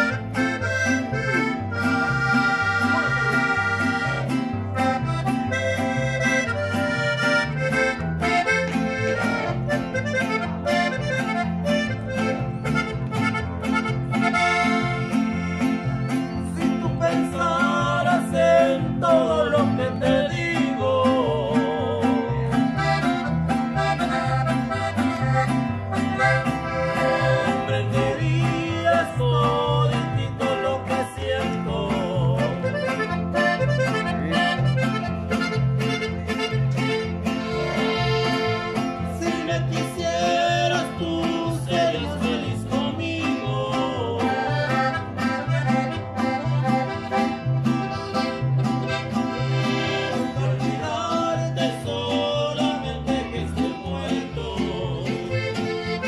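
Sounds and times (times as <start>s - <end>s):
accordion melody: 0.0s - 56.0s
guitars playing: 0.0s - 56.0s.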